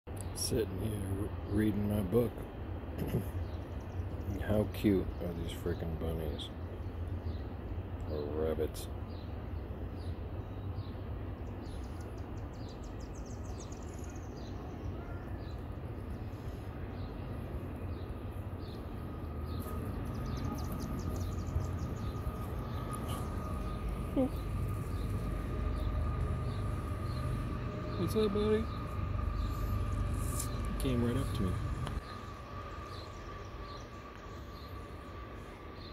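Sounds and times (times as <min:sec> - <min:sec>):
faint steady hum: 0:00.1 - 0:35.9
high bird chirps: 0:10.6 - 0:35.9
low rumble: 0:15.5 - 0:35.9.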